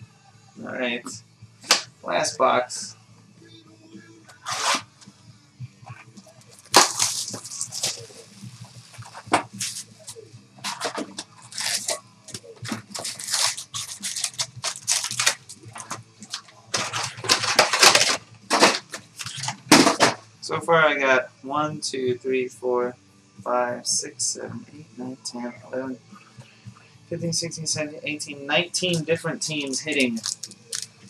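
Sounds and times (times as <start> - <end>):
paper and wrappers tearing: 4.4 - 4.9, 6.6 - 12.0, 12.6 - 19.9, 29.6 - 30.9.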